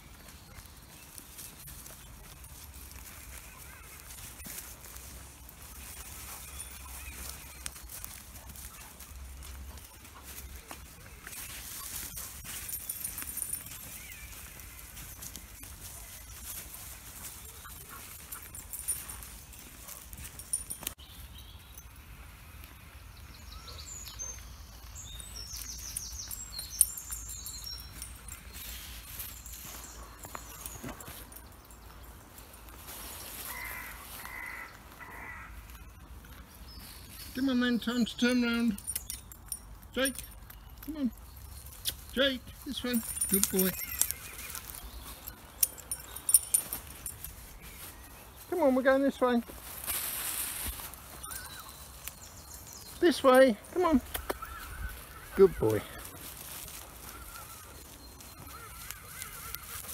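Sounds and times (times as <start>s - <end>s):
rustle of walker in undergrowth: 0.0s - 59.9s
woodland birds singing and calling: 0.0s - 59.9s.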